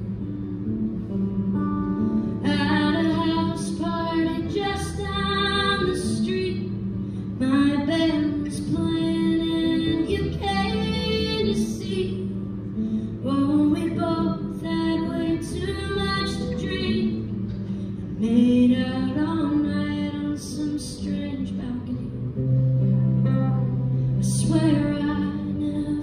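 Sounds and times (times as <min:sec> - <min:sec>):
acoustic guitar: 0:00.0 - 0:26.0
woman singing: 0:02.4 - 0:12.6, 0:13.2 - 0:22.4, 0:24.2 - 0:26.0.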